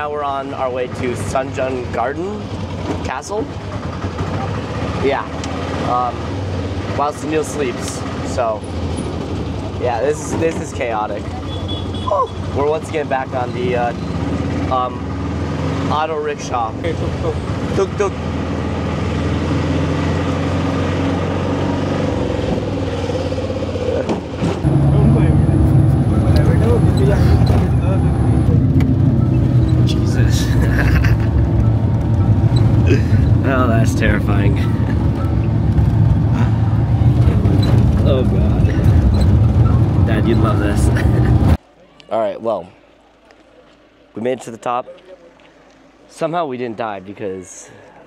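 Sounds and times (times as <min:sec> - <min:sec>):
car engine drone climbing: 0:12.9 - 0:41.6.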